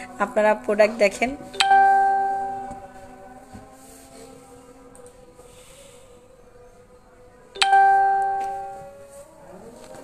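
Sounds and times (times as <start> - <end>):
bell-like chime: 7.6 - 8.8.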